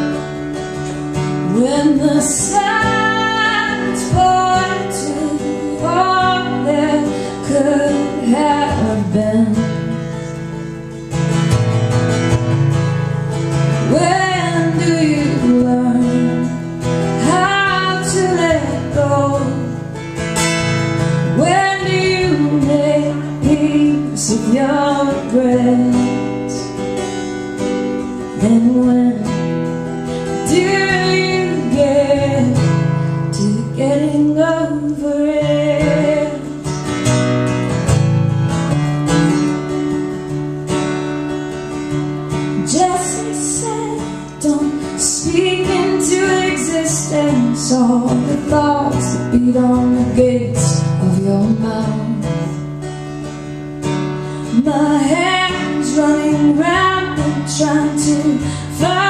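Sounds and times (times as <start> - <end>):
woman singing: 0.0 - 10.7, 13.3 - 20.0, 20.6 - 37.0, 42.4 - 52.7, 54.0 - 59.0
acoustic guitar strumming: 0.0 - 59.0.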